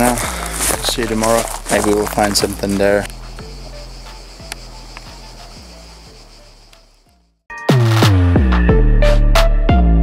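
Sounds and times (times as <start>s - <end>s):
electronic music with deep drum beat: 0.0s - 10.0s.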